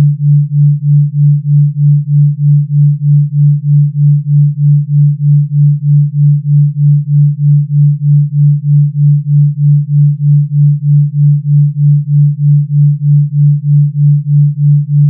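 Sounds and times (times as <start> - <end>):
pulsing low sine tone: 0.0 - 15.0.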